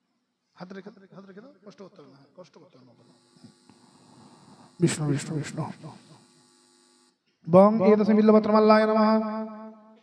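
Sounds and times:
faint electrical hum: 0:00.1 - 0:07.4.

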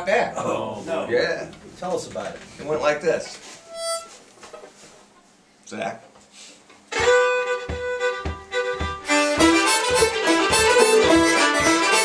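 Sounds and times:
harmonica note: 0:03.6 - 0:04.2, 0:06.9 - 0:12.0.

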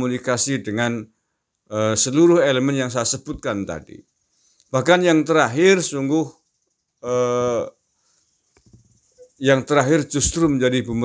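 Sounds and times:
faint clicks: 0:04.5 - 0:04.7.

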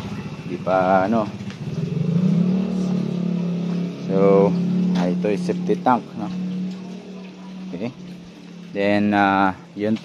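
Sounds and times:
motor engine running: 0:00.0 - 0:10.0.

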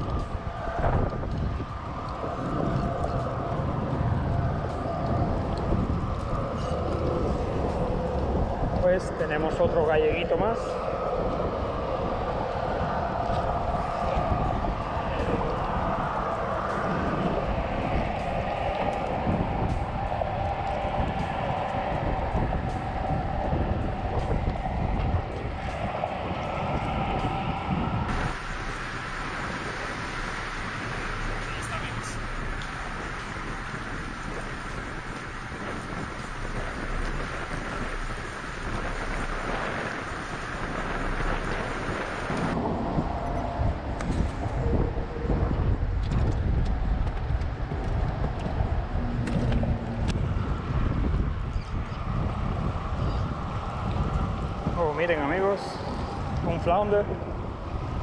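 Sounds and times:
traffic rumble on bridge: 0:00.0 - 0:58.0
wind buffeting microphone: 0:00.0 - 0:58.0.

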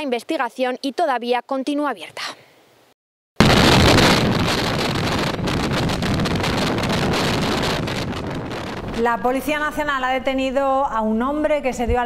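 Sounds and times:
wind buffeting microphone: 0:03.4 - 0:10.3.

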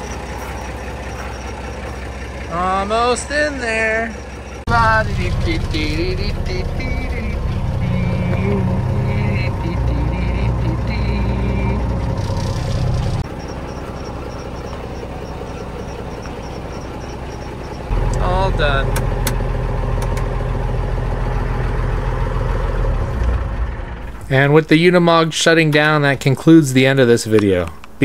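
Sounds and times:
high ticking: 0:00.0 - 0:21.7
diesel engine running hard: 0:00.0 - 0:24.4.

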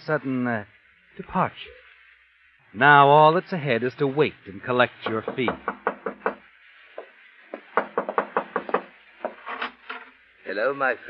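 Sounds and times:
knocks on a wooden door: 0:05.0 - 0:06.4, 0:07.0 - 0:09.4.

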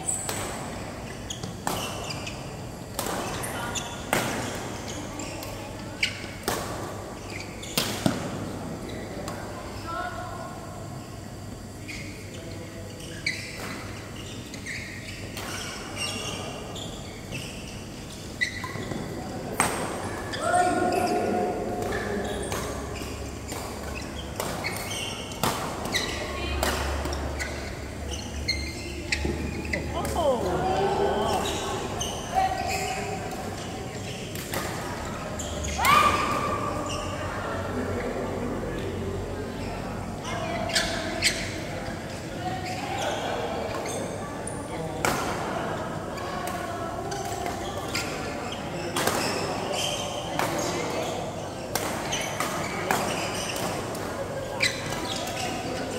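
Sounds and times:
players calling out: 0:29.8 - 0:32.8.

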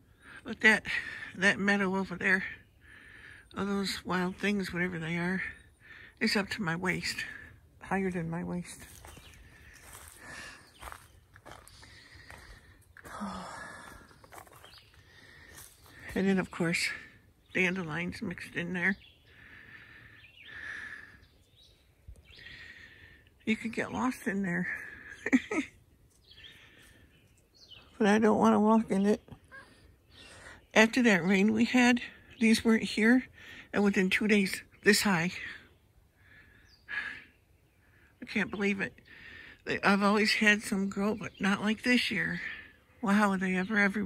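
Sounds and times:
man breathing: 0:09.4 - 0:16.1, 0:19.3 - 0:21.3.

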